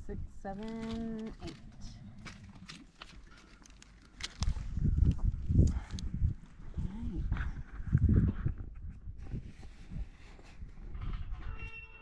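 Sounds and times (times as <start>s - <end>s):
hooves scuffing on dirt: 0.6s - 6.0s.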